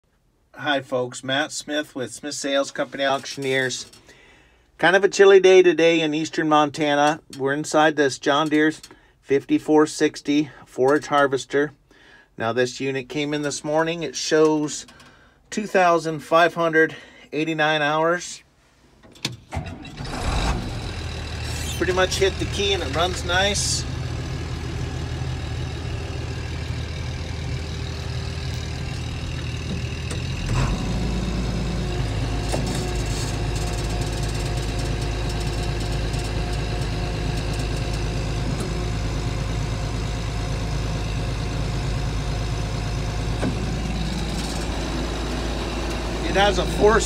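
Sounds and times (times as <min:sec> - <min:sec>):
diesel engine running: 0:19.9 - 0:47.0.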